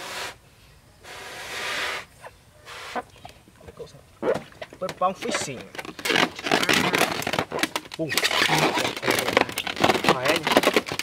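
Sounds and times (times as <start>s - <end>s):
breath blown into balloon: 0.0s - 0.4s, 1.0s - 2.1s
small rubbery sounds: 2.7s - 11.0s
short rubber squeaks: 4.2s - 11.0s.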